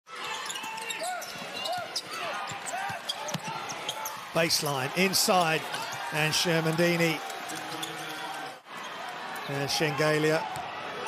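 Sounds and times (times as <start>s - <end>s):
sneaker squeaks: 0.1s - 4.2s
arena crowd noise: 0.1s - 11.0s.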